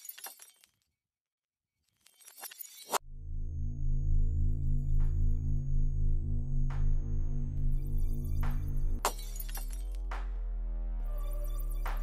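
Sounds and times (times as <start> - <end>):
light bulb shattering: 9.0 - 10.0.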